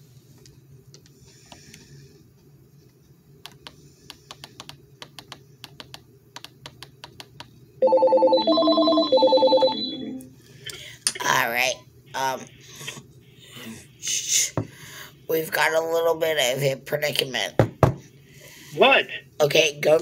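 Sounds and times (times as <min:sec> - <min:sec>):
electronic telephone ring: 0:07.8 - 0:10.2.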